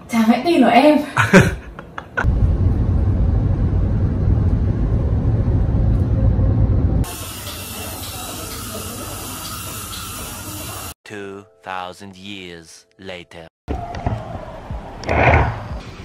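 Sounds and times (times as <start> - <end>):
road rumble inside car: 2.3 - 7.0.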